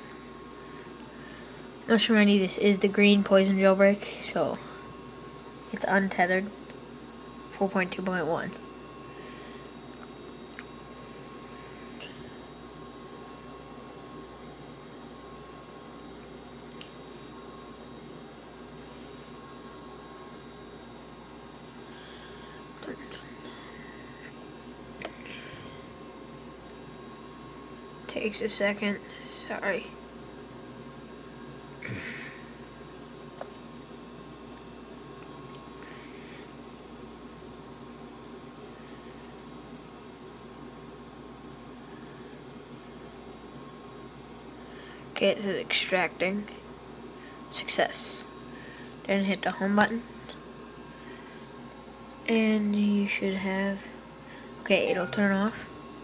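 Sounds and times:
faint hum: 0:00.0 - 0:56.0
low hum: 0:54.3 - 0:56.0
faint steady tone: 0:54.7 - 0:55.7.

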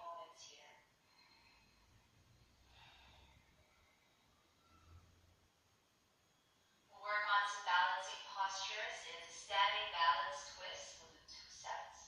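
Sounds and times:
woman talking through small speaker: 0:00.0 - 0:00.8, 0:06.9 - 0:12.0.

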